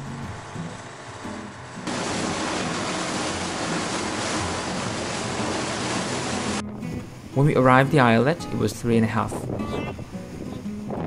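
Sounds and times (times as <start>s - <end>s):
water rushing past boat: 0.0s - 7.3s
boat engine: 0.0s - 7.4s
wind: 0.0s - 11.0s.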